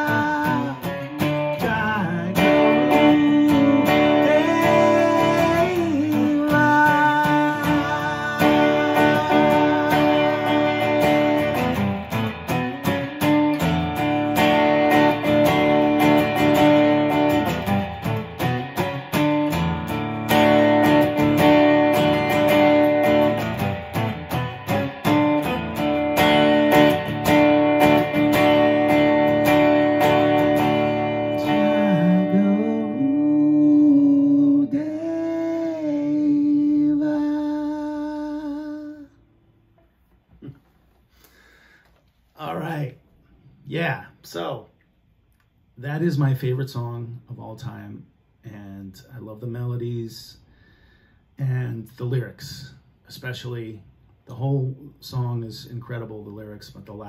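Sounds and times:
acoustic guitar strummed: 0.0 - 39.1.

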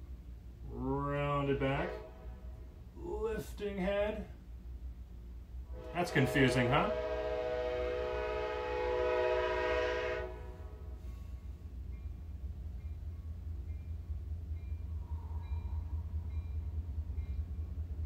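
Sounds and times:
low rumble of passing train: 0.0 - 18.0
train horn chord: 1.3 - 2.9, 5.6 - 11.4.

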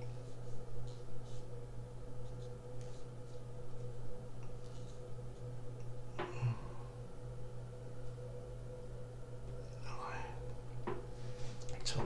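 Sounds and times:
steady low hum: 0.0 - 12.0
soft whisper-like breath: 9.7 - 12.0.

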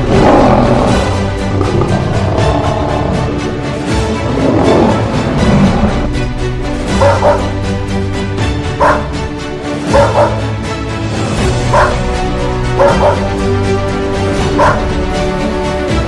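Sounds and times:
background music: 0.0 - 16.0
dog barking: 7.0 - 7.5, 8.8 - 9.1, 9.9 - 10.4, 11.7 - 12.1, 12.8 - 13.3, 14.5 - 14.9.

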